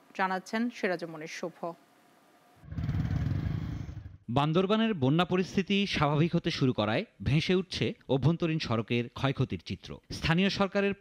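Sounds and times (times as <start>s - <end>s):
motorcycle engine rumbling: 2.7s - 4.2s.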